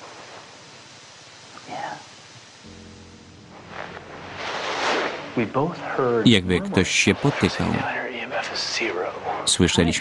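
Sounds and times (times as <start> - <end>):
faint hiss: 0.0 - 10.0
low suspense music drone: 2.6 - 7.6.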